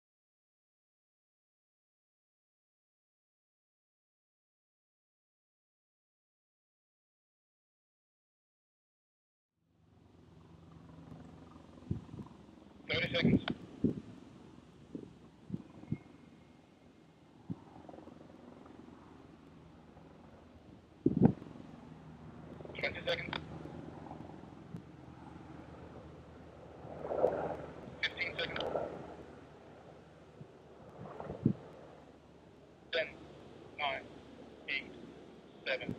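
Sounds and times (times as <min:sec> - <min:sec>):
low outdoor rumble: 0:09.7 - 0:35.9
wind on microphone: 0:11.8 - 0:14.2, 0:14.9 - 0:16.2, 0:17.4 - 0:18.0, 0:20.6 - 0:21.5, 0:30.3 - 0:31.9.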